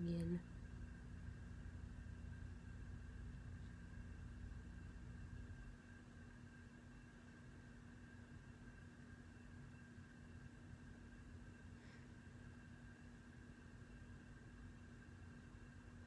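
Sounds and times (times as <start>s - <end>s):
faint steady hum: 0.0s - 16.0s.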